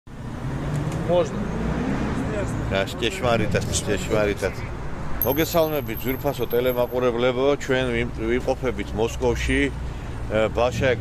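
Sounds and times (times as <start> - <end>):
street traffic rumble: 0.1 - 11.0.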